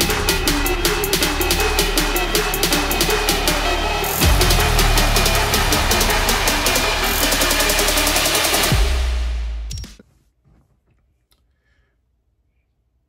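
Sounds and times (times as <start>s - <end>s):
deep bass sweeps: 0.0s - 9.7s
electronic drum beat: 0.0s - 9.9s.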